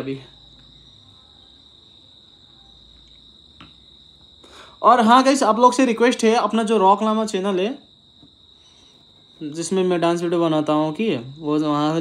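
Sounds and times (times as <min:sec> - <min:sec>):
insect trilling: 0:00.0 - 0:12.0.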